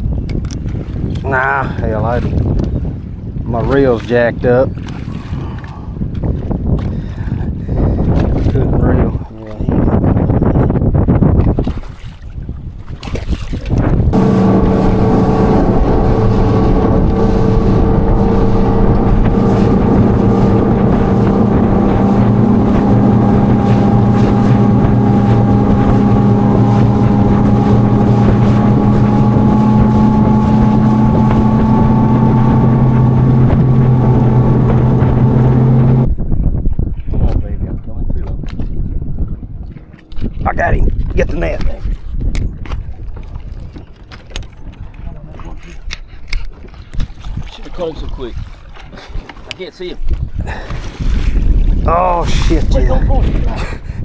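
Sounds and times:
water rushing along hull: 0.0s - 9.9s, 11.3s - 54.0s
wind buffeting microphone: 0.0s - 54.0s
outboard motor humming: 13.6s - 36.1s.

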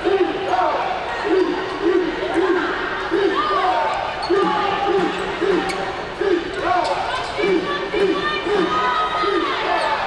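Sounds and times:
arena voices: 0.0s - 10.0s.

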